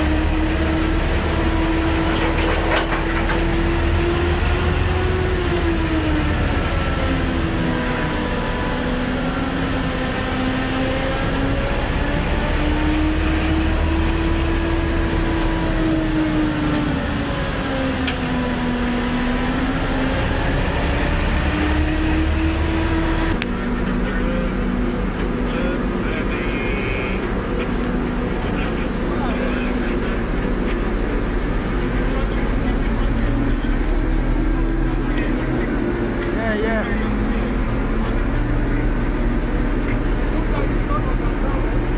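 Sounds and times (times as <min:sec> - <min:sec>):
tugboat engine running: 0:00.0 - 0:41.9.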